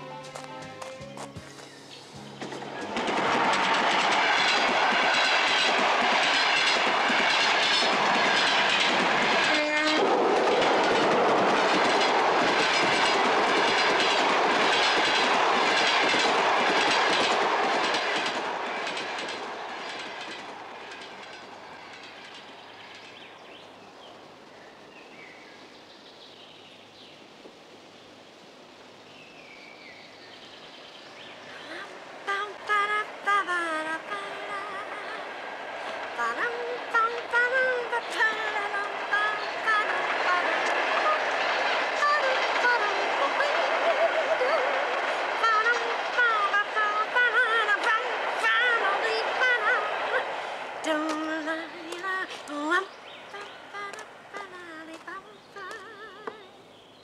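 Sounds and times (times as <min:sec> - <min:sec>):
train wheels clattering over rail joints: 0:02.1 - 0:24.1, 0:31.2 - 0:56.5.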